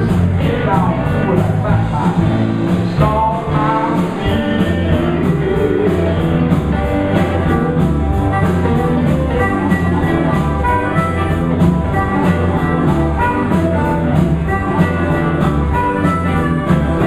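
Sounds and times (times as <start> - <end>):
bass and drums: 0.0 - 17.0
electric guitar: 0.0 - 17.0.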